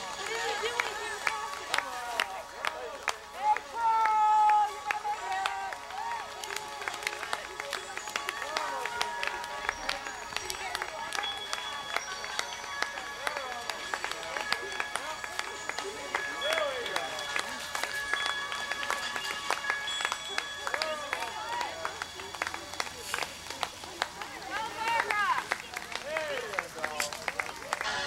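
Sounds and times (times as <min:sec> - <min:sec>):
held steady tones: 0:00.0 - 0:26.8
scattered hand claps: 0:00.0 - 0:28.0
people shouting: 0:01.8 - 0:06.6.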